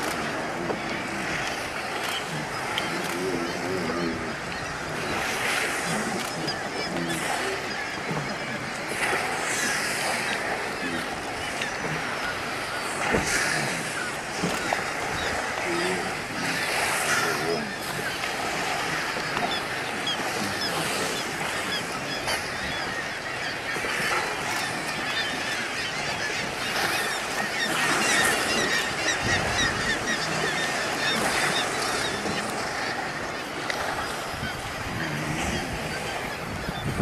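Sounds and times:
sea water rushing around a boat: 0:00.0 - 0:37.0.

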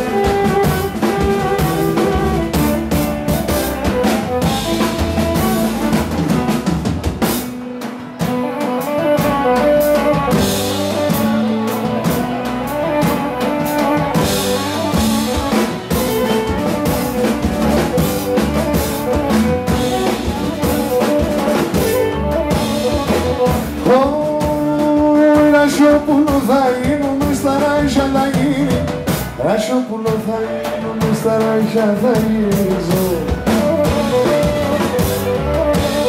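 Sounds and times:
amplified melody: 0:00.0 - 0:29.5, 0:30.4 - 0:36.0
drums and percussion: 0:00.0 - 0:36.0.

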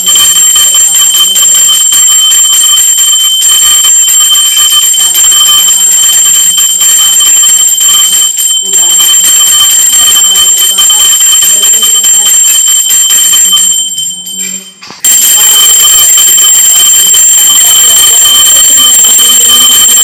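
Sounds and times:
hand bell ringing: 0:00.0 - 0:15.5.

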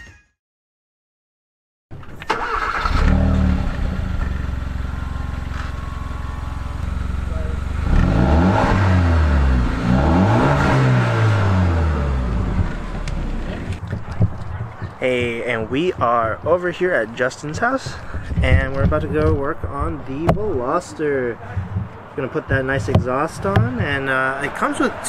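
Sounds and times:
car engine idling and revving: 0:02.6 - 0:13.8.

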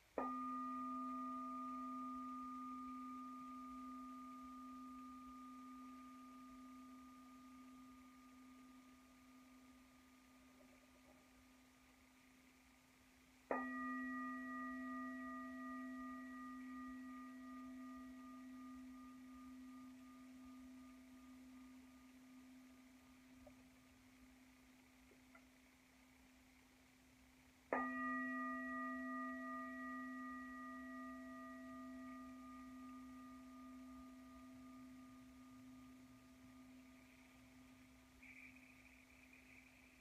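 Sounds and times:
meditation bell ringing: 0:00.1 - 0:11.2, 0:13.5 - 0:23.7, 0:27.7 - 0:40.0.

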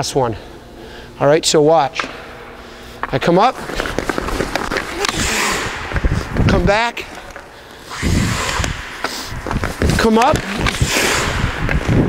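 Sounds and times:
skate blades scraping ice: 0:03.6 - 0:06.3, 0:07.1 - 0:12.0.

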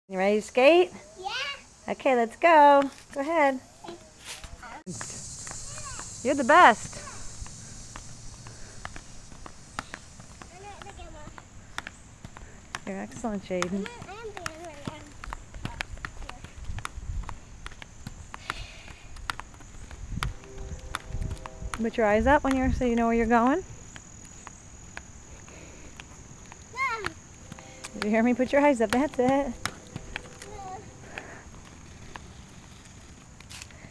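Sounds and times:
high-pitched insect drone: 0:04.6 - 0:11.1, 0:17.7 - 0:33.8
inline skates clacking on asphalt: 0:04.9 - 0:33.9.

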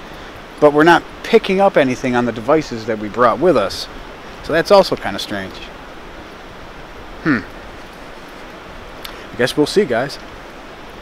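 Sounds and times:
low background hiss: 0:00.0 - 0:11.0
man's short hmm: 0:07.2 - 0:07.6.

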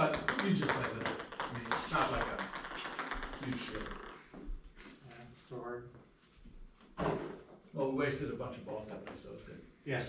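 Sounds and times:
man speaking: 0:00.0 - 0:04.0, 0:05.0 - 0:06.0, 0:07.7 - 0:10.0.

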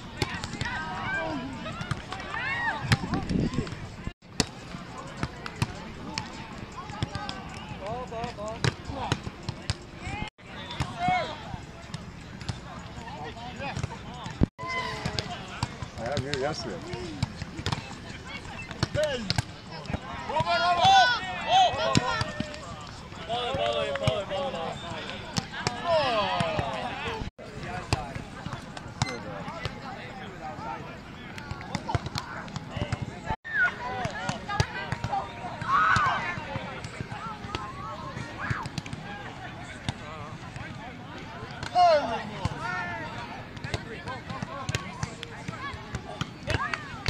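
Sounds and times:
players' voices: 0:00.0 - 0:47.0.

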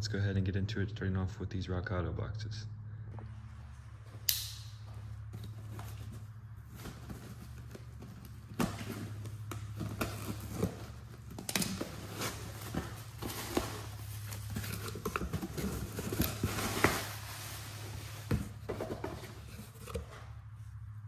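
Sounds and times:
steady low hum: 0:00.0 - 0:21.0
knocks and rustles: 0:04.8 - 0:20.5.

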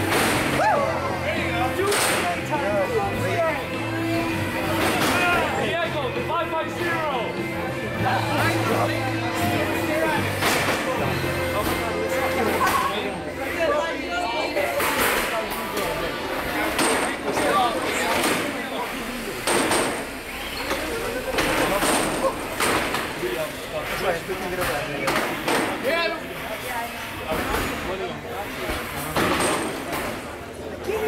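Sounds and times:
background music: 0:00.0 - 0:16.9
crowd chatter: 0:00.0 - 0:31.0.

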